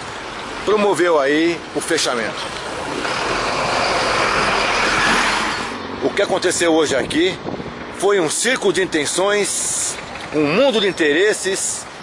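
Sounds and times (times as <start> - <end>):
vehicle passing close by: 2.7 - 6.3.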